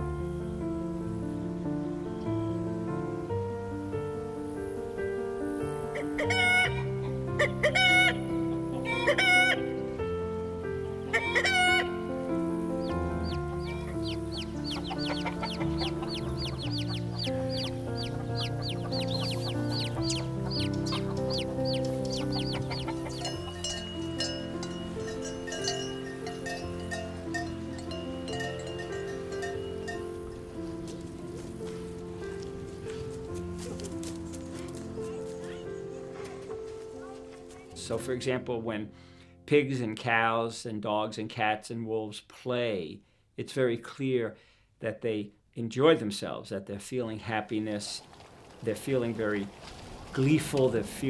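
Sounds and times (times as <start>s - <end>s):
music with sustained low notes: 0.0s - 39.8s
rooster calling: 5.9s - 9.8s, 11.0s - 27.8s
chicks cheeping: 10.8s - 29.9s.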